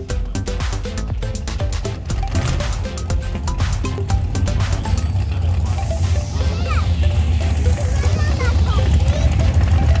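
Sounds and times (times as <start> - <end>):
car engine deep rumble: 0.0 - 10.0
spectators talking: 4.4 - 10.0.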